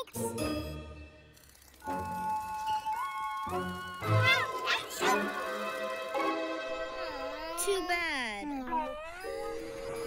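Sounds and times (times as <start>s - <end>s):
cartoon voices groaning: 6.9s - 10.0s.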